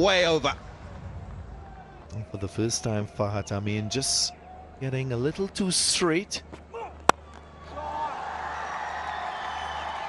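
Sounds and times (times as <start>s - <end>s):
distant crowd cheering: 0.4s - 5.1s, 6.7s - 10.0s
cricket bat striking ball: 7.0s - 7.2s.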